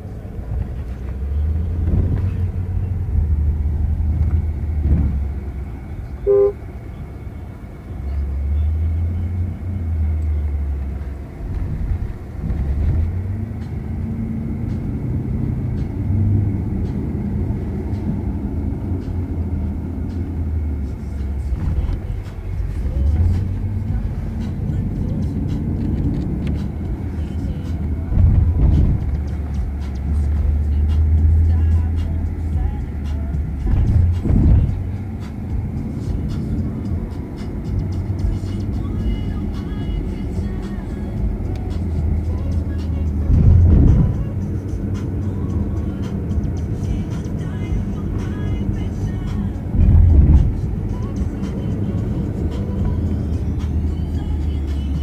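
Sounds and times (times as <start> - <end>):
car engine and road rumble: 0.0 - 55.0
short beep: 6.2 - 6.6.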